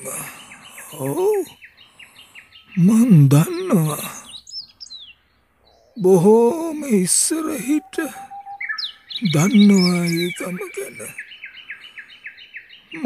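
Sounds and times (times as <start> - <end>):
person's voice: 0.0 - 1.5, 2.8 - 4.2, 6.0 - 8.2, 9.2 - 11.1
bird trilling: 0.0 - 13.0.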